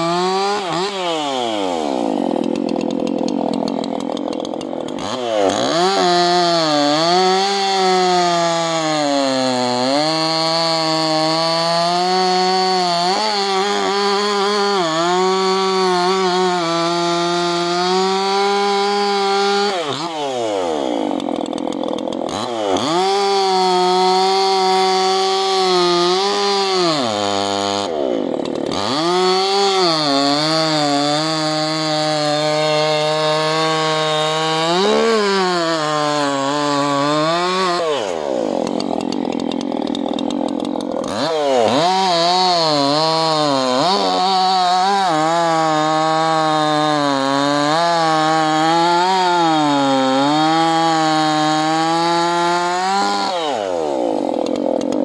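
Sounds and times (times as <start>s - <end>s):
chainsaw cutting logs: 0.0s - 55.0s.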